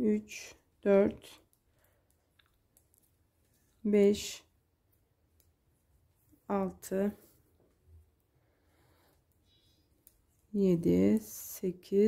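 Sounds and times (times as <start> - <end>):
knitting needles clicking: 1.0 - 3.2, 9.3 - 12.0
person speaking: 3.8 - 4.5, 6.4 - 7.3, 10.5 - 12.0.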